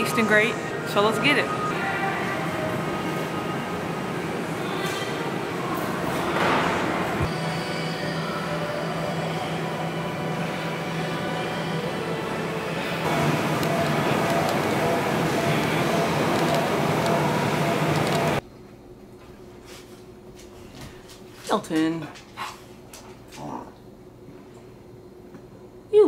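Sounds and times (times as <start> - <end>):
low machine hum: 0.0 - 26.0.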